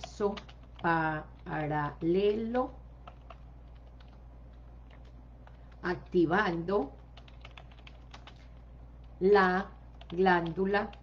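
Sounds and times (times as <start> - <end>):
typing on computer keyboard: 0.0 - 9.2, 9.9 - 11.0
low steady hum: 0.0 - 11.0.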